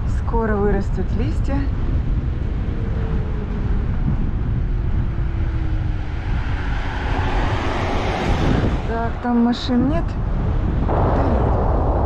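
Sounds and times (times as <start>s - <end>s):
wind rumbling on microphone: 0.0s - 12.0s
rush of noise: 1.0s - 12.0s.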